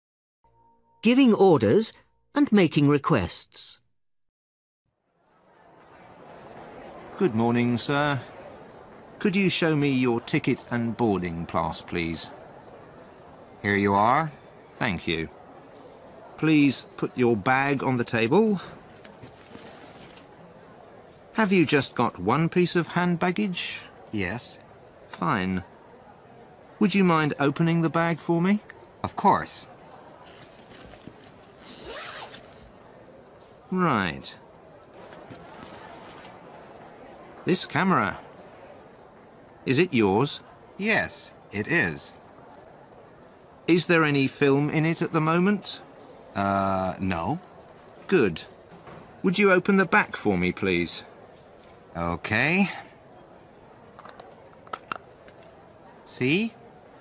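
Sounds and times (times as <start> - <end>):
faint background noise: 4.9 - 57.0
zip being pulled open: 31.5 - 32.6.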